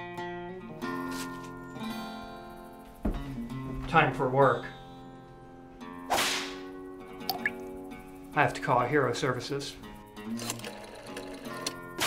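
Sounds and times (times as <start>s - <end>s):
background music tones: 0.0s - 12.0s.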